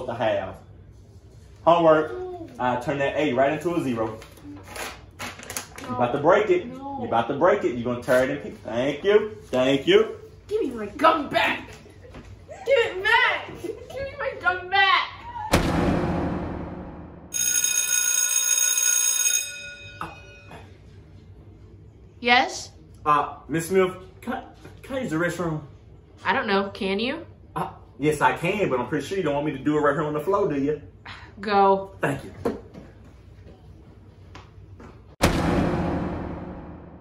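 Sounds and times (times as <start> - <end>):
sharp crash: 15.5 - 17.3, 35.2 - 37.0
bell ringing: 17.3 - 20.6
footsteps walking away: 32.4 - 35.2.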